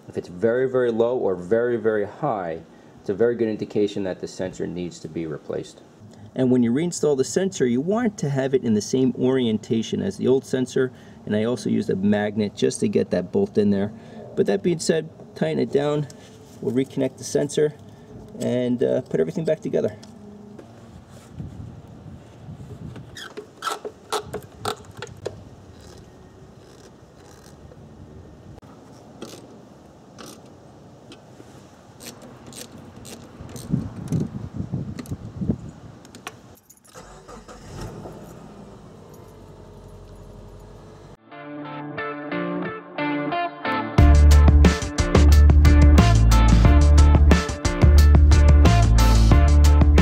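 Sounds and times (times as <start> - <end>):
music: 41.2 - 50.0.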